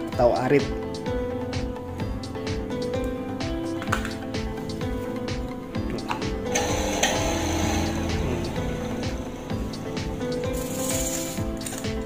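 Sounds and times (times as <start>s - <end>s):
background music: 0.0s - 12.0s
electric pump motor running: 6.4s - 11.4s.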